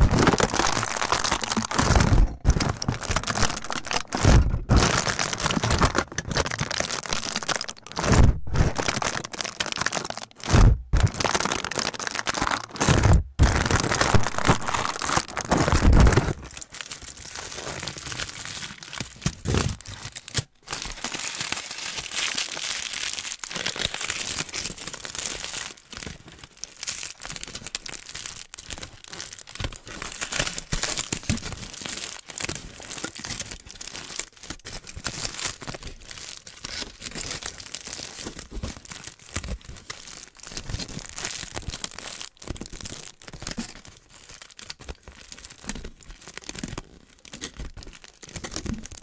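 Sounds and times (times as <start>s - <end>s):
aluminium foil crinkling: 0.0s - 49.0s.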